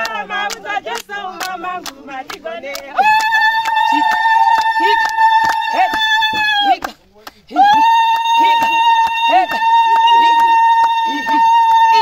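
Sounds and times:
rhythmic hand clapping: 0.0s - 12.0s
voices: 0.0s - 12.0s.

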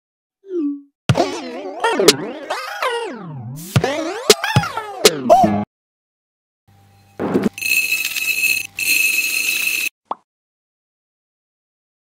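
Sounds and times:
electronic buzzer: 7.0s - 9.9s.

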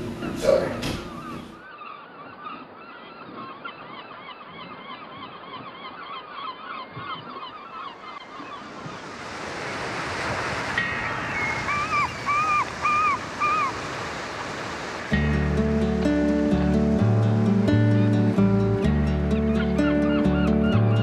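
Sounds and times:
waves rushing: 7.9s - 21.0s
flock of birds honking: 10.8s - 14.1s.

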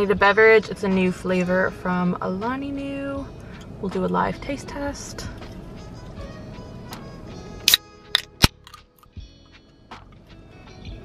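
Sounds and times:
background music: 0.0s - 11.0s
can pull tab opening: 6.9s - 9.1s.

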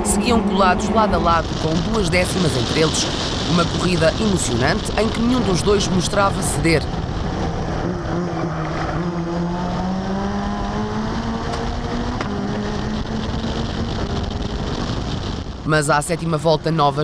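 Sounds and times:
wind and road noise: 0.0s - 17.0s
race car engine accelerating: 6.9s - 15.5s.

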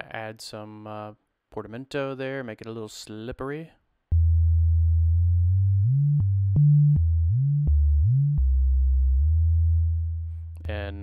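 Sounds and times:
sine-wave bass line sliding pitch: 4.1s - 10.4s.

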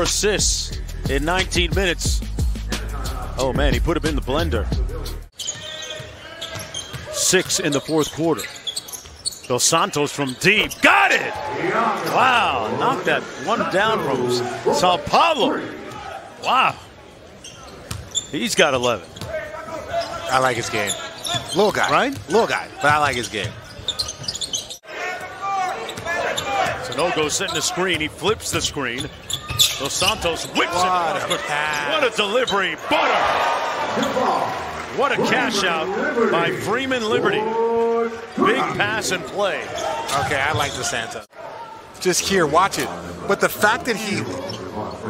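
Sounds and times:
music: 0.0s - 5.3s
arena crowd noise: 0.0s - 45.0s
sneakers squeaking: 5.3s - 12.2s, 17.1s - 33.3s, 38.7s - 41.2s, 43.9s - 45.0s.

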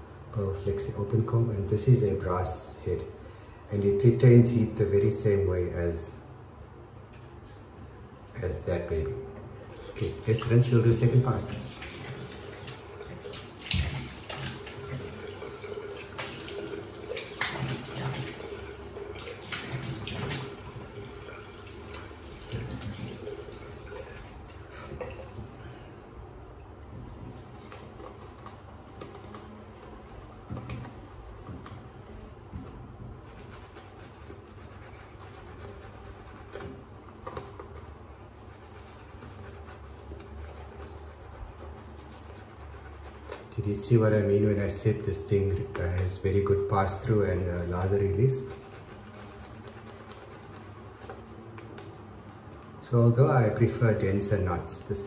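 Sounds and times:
tap water running into sink: 9.7s - 25.2s
water splashing: 9.7s - 25.4s.

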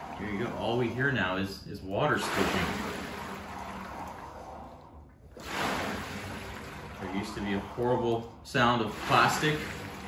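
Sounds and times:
water swishing in a tank: 0.0s - 10.0s.

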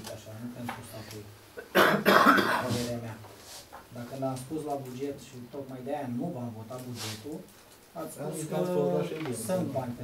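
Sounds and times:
person coughing: 1.6s - 2.7s
throat clearing: 1.6s - 2.7s.

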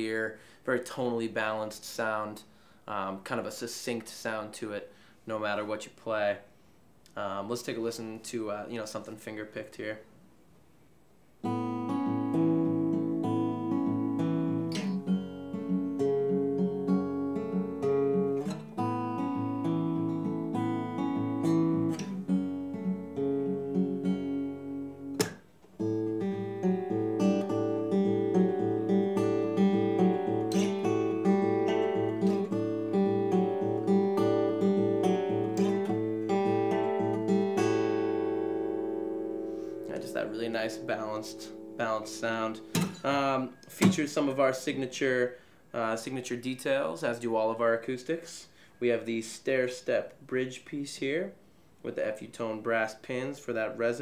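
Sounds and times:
fingerpicked acoustic guitar: 11.4s - 44.8s.

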